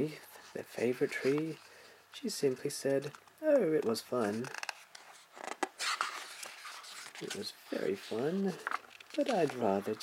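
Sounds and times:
book page turning: 0:00.3 - 0:01.7, 0:02.4 - 0:10.0.

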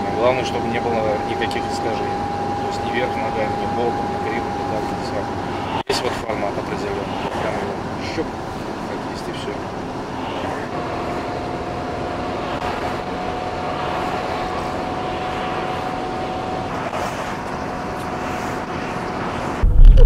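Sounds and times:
car cabin road noise: 0:00.0 - 0:20.0.

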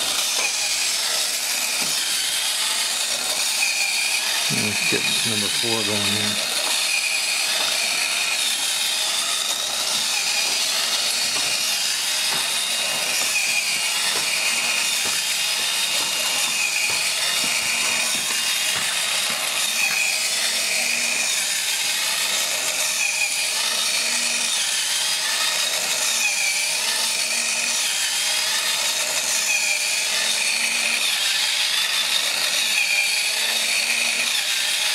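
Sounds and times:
hobby motor whirring gears: 0:00.0 - 0:34.9.

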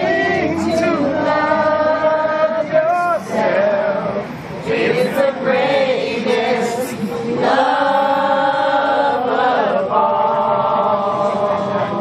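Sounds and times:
crowd singing unaccompanied: 0:00.0 - 0:12.0.

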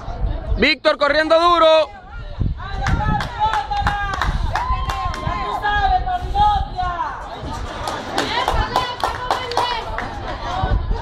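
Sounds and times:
spectators clapping in rhythm: 0:02.8 - 0:05.3, 0:07.4 - 0:10.2.

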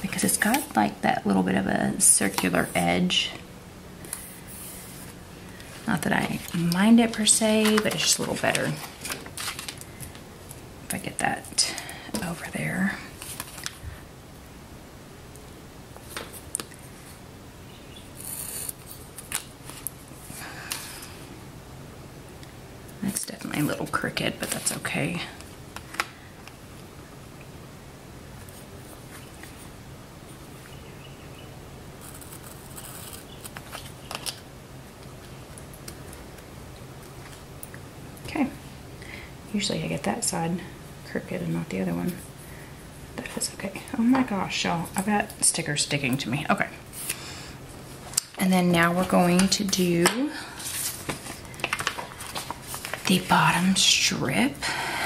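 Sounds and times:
low steady hum: 0:00.0 - 0:55.0
paper stickers rustling and tapping: 0:05.9 - 0:10.2, 0:49.0 - 0:53.3.

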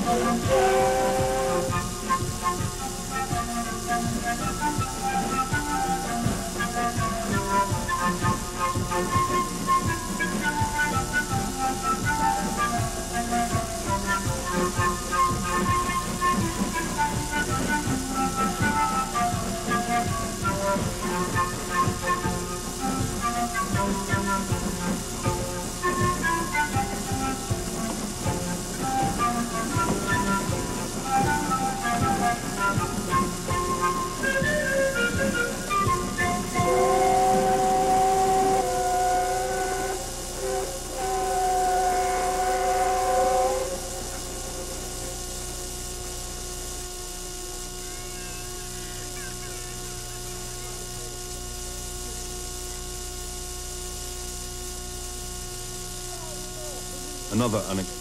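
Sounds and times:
locomotive whistle blasts: 0:00.0 - 0:45.7
steady hum: 0:00.0 - 0:58.0.

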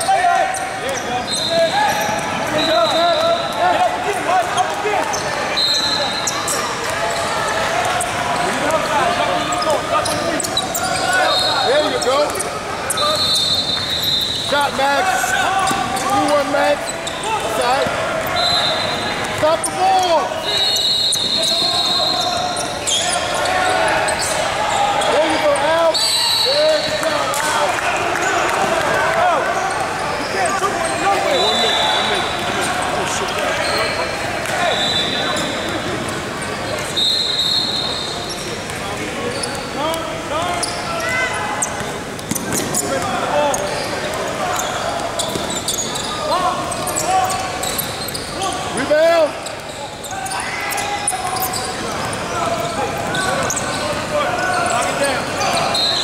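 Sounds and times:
sneakers squeaking: 0:00.0 - 0:27.4, 0:29.5 - 0:56.0
basketballs bouncing: 0:41.7 - 0:48.2.

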